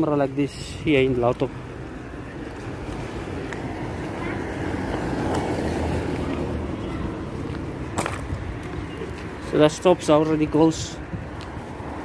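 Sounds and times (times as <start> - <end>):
car passing: 0.0 - 12.0
street traffic noise: 0.0 - 12.0.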